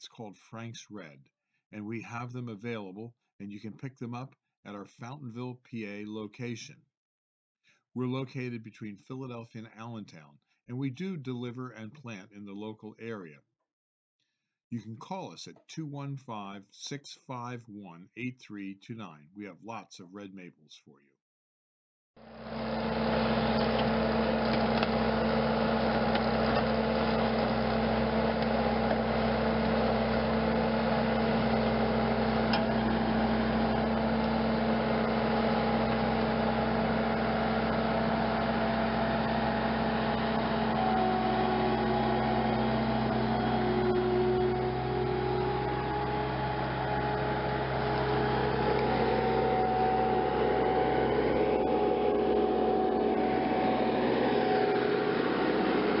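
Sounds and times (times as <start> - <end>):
loader engine running: 22.3 - 56.0.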